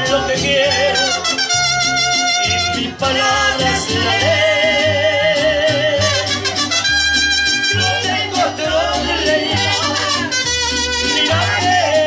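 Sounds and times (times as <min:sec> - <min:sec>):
pulsing bass line: 0:00.0 - 0:10.3
acoustic guitar: 0:00.0 - 0:12.0.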